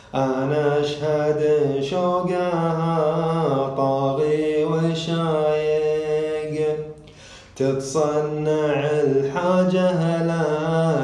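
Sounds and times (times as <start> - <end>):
man chanting poetry: 0.0 - 11.0.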